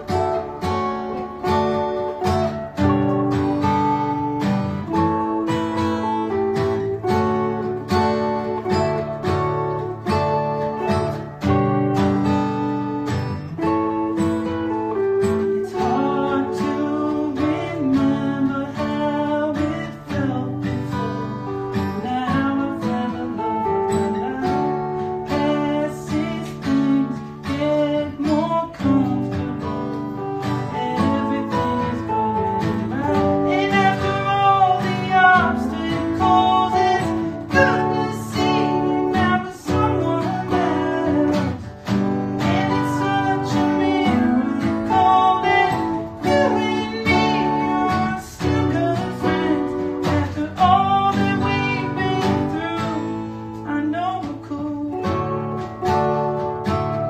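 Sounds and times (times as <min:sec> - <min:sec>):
acoustic guitar strumming chords: 0:00.0 - 0:57.0
electric guitar melody: 0:00.0 - 0:57.0
man singing: 0:13.6 - 0:56.3.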